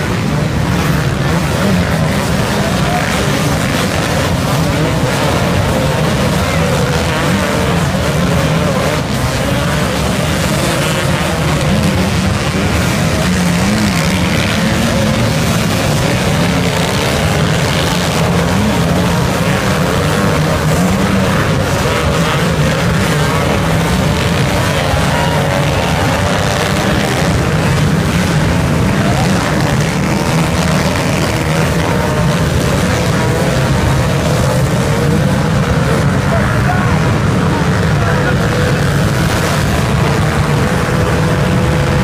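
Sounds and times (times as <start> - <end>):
motorcycle engines revving: 0.0 - 42.0.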